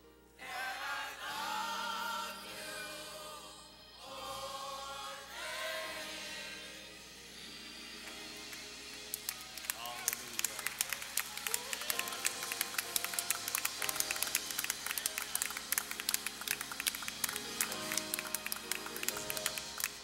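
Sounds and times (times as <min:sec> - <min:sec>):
choir singing: 0:00.4 - 0:20.0
people clapping hands: 0:08.1 - 0:20.0.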